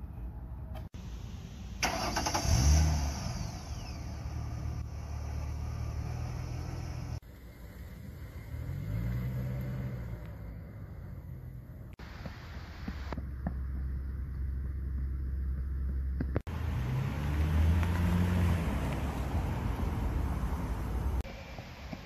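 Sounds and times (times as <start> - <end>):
car engine starting and revving: 1.8 - 12.0, 16.4 - 21.3
car pulling away: 1.8 - 12.0, 16.5 - 21.6.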